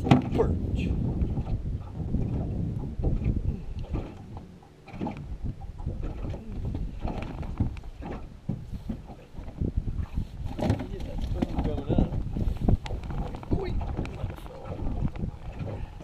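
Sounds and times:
waves lapping against boat hull: 0.0s - 16.0s
wind buffeting microphone: 0.0s - 16.0s.

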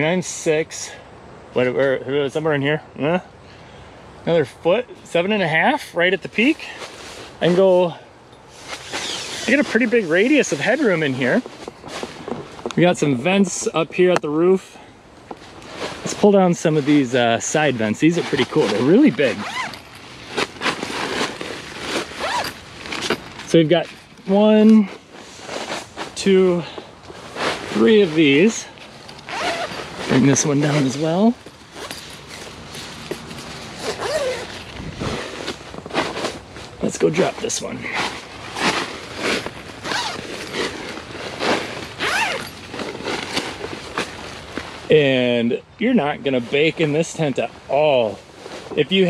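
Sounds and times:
tent fabric rustling: 8.5s - 13.8s, 15.2s - 45.4s, 46.3s - 49.0s.

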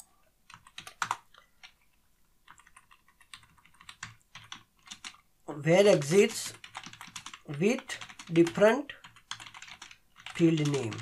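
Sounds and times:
typing on keyboard: 0.4s - 5.2s, 5.9s - 11.0s.

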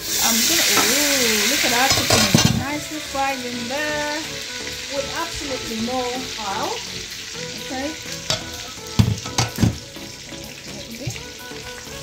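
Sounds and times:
chicken sizzling in skillet: 0.0s - 12.0s
utensils clattering against pan: 0.6s - 2.8s, 8.2s - 9.8s.

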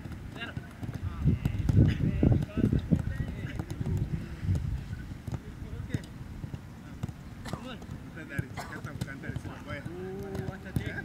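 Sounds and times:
footballs being kicked: 0.0s - 11.0s
voices calling: 0.4s - 11.0s.

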